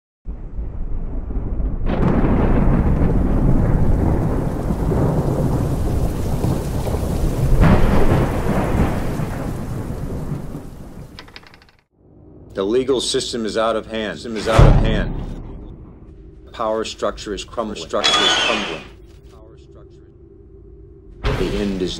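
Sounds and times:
thunder: 0.3 - 11.2
rain: 0.3 - 11.6.

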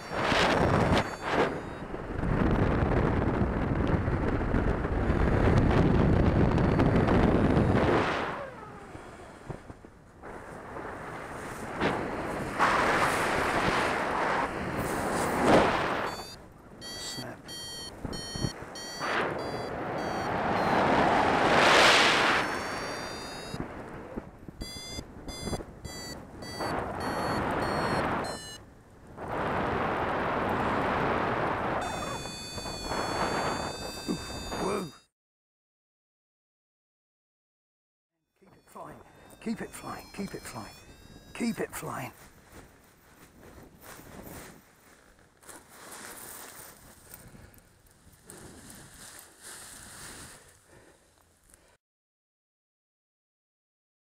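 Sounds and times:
variometer beeping: 0.0 - 1.9, 16.0 - 21.3, 22.3 - 23.6, 24.6 - 28.6, 31.8 - 35.1, 38.4 - 42.1
wind buffeting microphone: 0.1 - 16.9.

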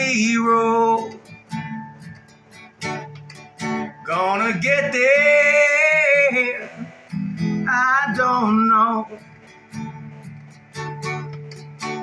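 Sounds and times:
person singing: 0.0 - 1.3, 4.0 - 9.4
acoustic guitar strumming: 0.0 - 12.0.

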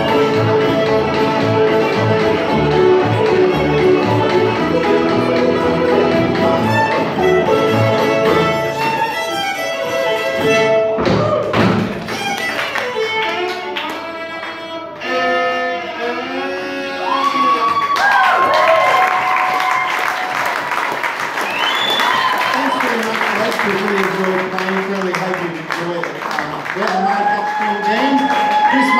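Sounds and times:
banjo: 0.0 - 12.3
double bass: 0.0 - 17.2
fiddle: 0.0 - 17.8
audience applauding: 11.4 - 14.6, 17.1 - 28.9.

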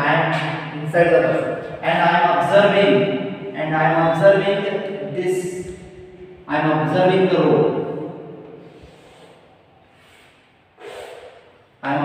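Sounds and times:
man speaking: 0.0 - 8.0, 11.8 - 12.0
man breathing through nose: 8.6 - 11.6.

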